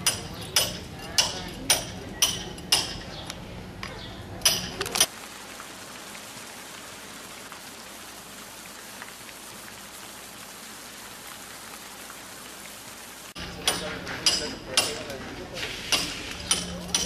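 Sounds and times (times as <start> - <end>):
sharp clinks and knocks: 0.0 - 5.1, 13.4 - 17.0.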